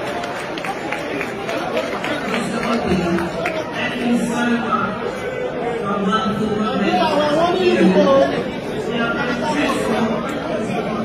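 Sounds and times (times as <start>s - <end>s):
several voices chattering: 0.0s - 11.0s.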